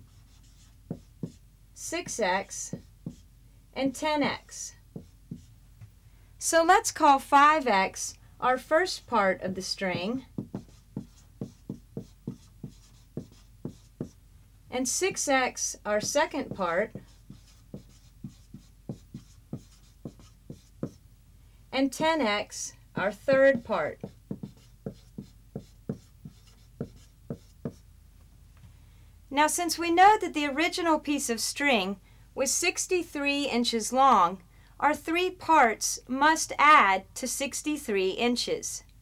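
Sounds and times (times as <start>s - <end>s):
marker writing on a whiteboard: 0.0s - 3.3s, 4.3s - 5.5s, 9.0s - 14.2s, 14.8s - 21.0s, 21.8s - 27.8s.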